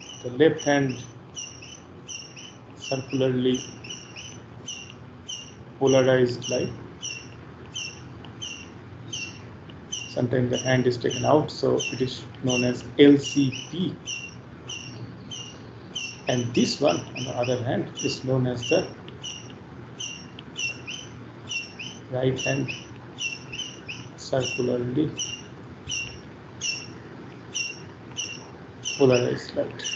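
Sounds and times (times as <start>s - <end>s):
stylus squeaking on glass: 0.0s - 29.9s.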